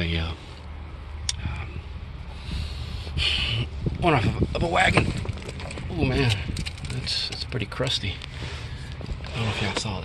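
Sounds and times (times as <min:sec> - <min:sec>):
wind rumble on microphone: 0:01.4 - 0:07.4.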